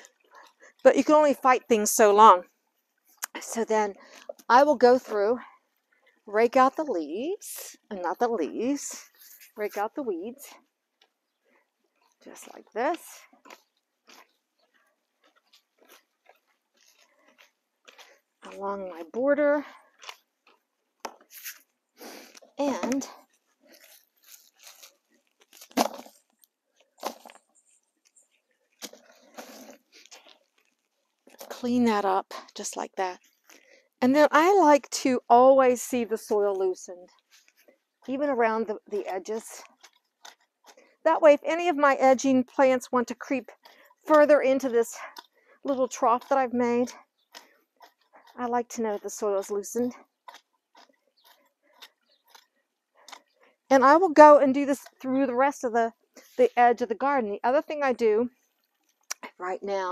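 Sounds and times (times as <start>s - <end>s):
hands pulling weeds from soil: 8.0s - 10.0s, 21.1s - 34.8s
hoe scraping through soil: 8.6s - 10.6s, 21.2s - 26.3s, 28.8s - 33.7s, 35.6s - 58.8s.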